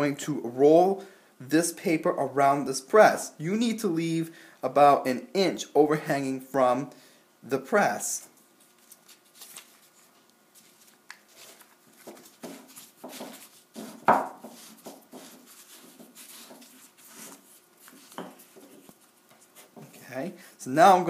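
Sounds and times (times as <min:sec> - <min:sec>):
newspaper rustling and crinkling: 0:08.5 - 0:19.8.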